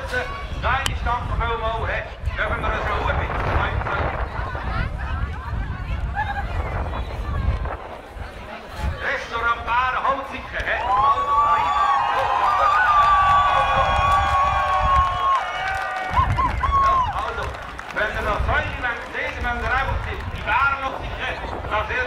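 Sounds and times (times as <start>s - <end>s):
crowd cheering: 10.6s - 20.6s.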